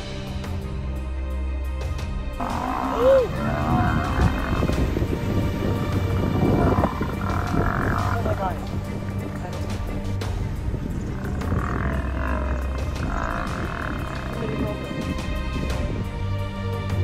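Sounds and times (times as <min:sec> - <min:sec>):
music with sustained tones: 0:00.0 - 0:17.0
hyenas and wild dogs fighting: 0:02.4 - 0:05.0, 0:06.0 - 0:09.9, 0:10.9 - 0:14.8.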